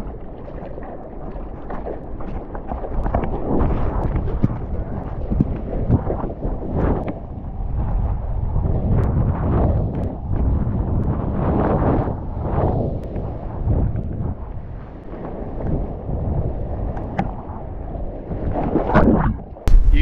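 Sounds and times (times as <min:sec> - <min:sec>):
wind buffeting microphone: 0:03.0 - 0:20.0.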